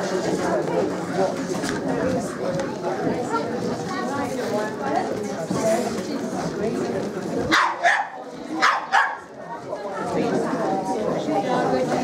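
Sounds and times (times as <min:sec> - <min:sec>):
dog barking: 0:07.5 - 0:09.3.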